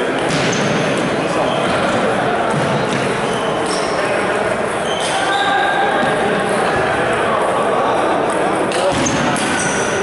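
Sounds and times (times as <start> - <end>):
voices and chatter echoing: 0.0 - 10.0.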